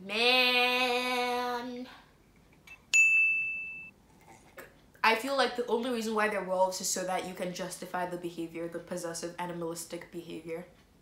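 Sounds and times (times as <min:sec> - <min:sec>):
bright bell ding: 0:02.9 - 0:03.9.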